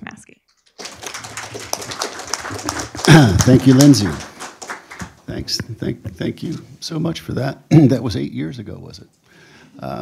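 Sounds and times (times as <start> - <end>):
audience applauding: 0.7 - 5.6.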